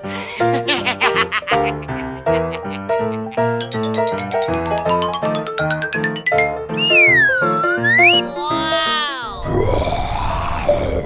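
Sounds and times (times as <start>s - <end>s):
background music: 0.0s - 9.5s
cartoon falling glide effect: 6.8s - 9.5s.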